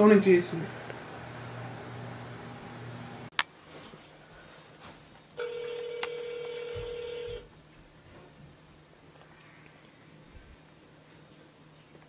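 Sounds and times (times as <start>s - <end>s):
telephone ringback tone: 5.4s - 7.5s.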